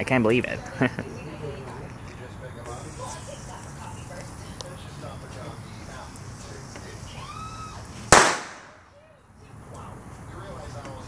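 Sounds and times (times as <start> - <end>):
firecracker bang: 8.1 - 8.8.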